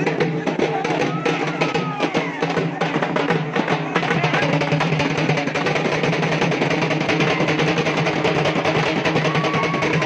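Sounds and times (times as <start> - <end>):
music with fast drumming: 0.0 - 10.0.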